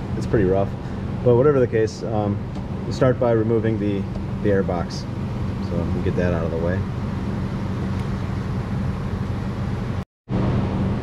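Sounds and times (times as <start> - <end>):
low mechanical hum of machinery: 0.0 - 11.0.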